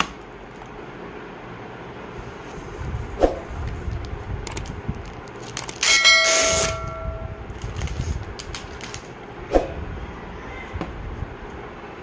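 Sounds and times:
bell ding: 5.9 - 7.3.

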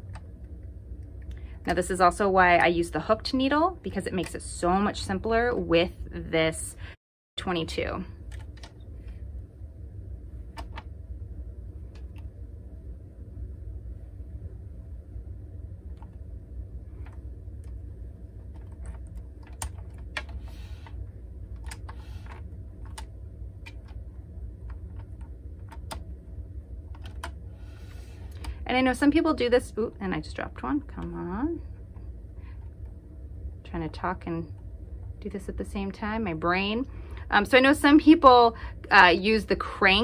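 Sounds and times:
steady low hum: 0.0 - 40.0.

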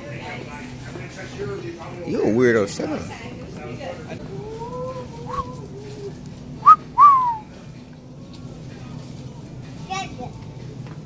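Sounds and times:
person wolf whistling: 6.6 - 7.4.

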